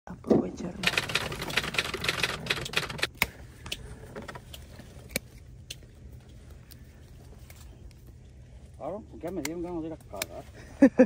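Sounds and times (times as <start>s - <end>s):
shears snipping: 4.5s - 8.0s, 9.2s - 10.4s.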